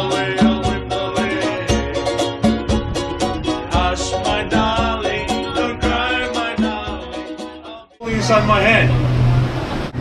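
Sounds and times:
hand drum: 0.0 - 7.6
man singing: 0.0 - 8.5
ukuleles strumming: 0.0 - 9.5.

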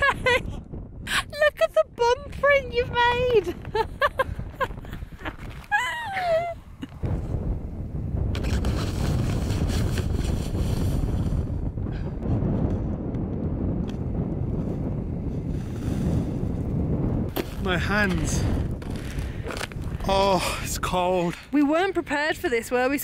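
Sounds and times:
wind buffeting microphone: 0.0 - 23.0
footsteps crunching in snow: 17.3 - 20.1.

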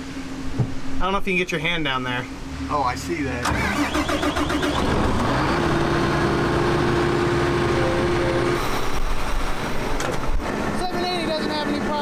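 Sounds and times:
large farm machinery engine: 2.9 - 12.0.

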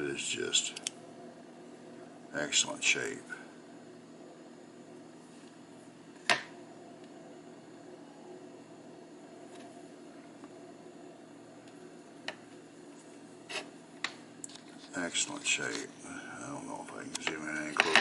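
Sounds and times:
low room hum: 0.0 - 18.0.

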